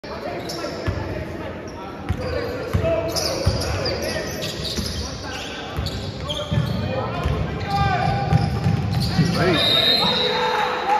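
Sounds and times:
sneakers squeaking: 0.1 - 10.4.

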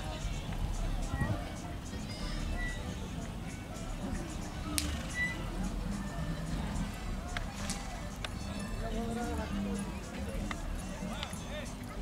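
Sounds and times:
distant crowd voices: 0.0 - 12.0
faint background music: 0.0 - 12.0.

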